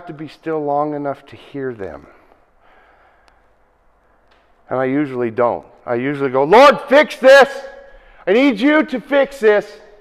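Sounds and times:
man breathing out: 2.6s - 3.4s.

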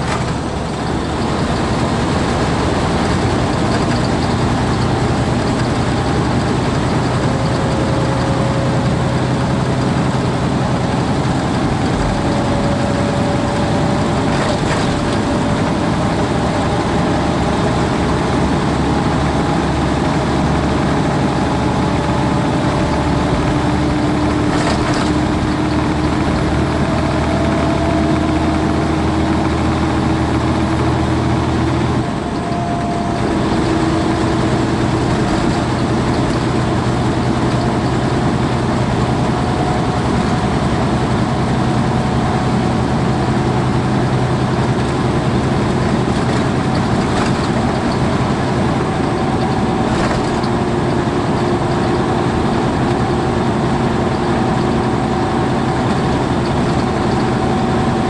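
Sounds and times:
road and wind noise: 0.0s - 58.0s
truck engine drone: 0.0s - 58.0s.

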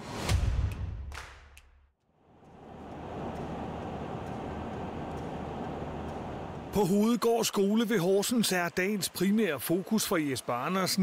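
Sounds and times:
car road and engine noise: 2.3s - 6.8s.

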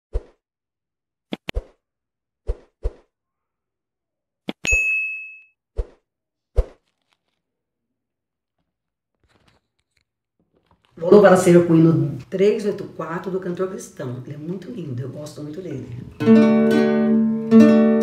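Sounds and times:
bell ding: 4.7s - 5.5s.

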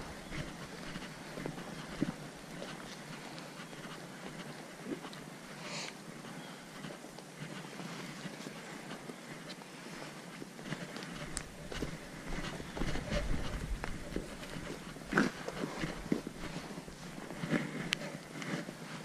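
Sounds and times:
faint outdoor ambience: 0.0s - 19.0s.

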